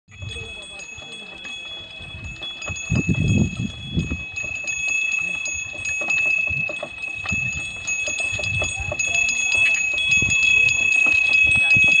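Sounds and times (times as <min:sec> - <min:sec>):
neck bells ringing and jingling: 0:00.1 - 0:12.0.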